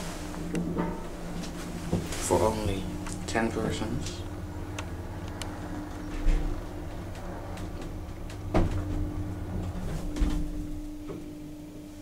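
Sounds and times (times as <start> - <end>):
elevator drive humming: 0.0 - 12.0.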